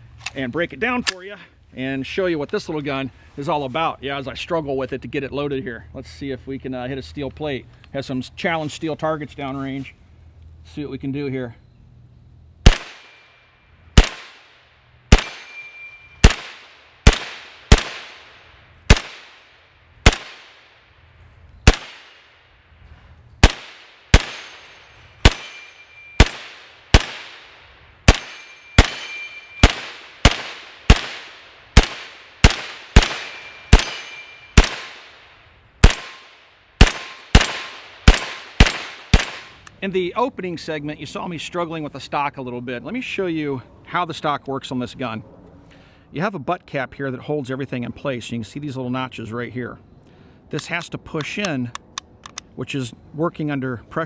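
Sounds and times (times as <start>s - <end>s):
gunshots: 12.6s - 13.2s, 14.0s - 15.6s, 16.2s - 18.3s, 18.9s - 20.7s, 21.7s - 22.4s, 23.4s - 35.2s, 35.8s - 39.6s
bullets ringing on steel plates: 15.4s - 16.2s, 24.4s - 26.3s, 28.1s - 29.8s, 33.0s - 34.6s.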